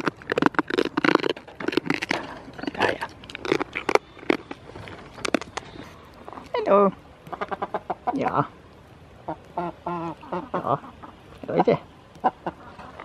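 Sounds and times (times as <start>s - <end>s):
farm animals calling: 0.0s - 8.5s, 9.2s - 13.0s.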